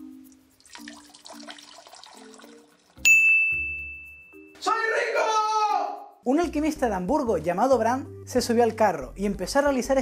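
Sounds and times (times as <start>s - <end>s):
light music: 0.0s - 10.0s
liquid splashing into toilet bowl: 0.3s - 3.0s
bright bell-like ding: 3.0s - 4.6s.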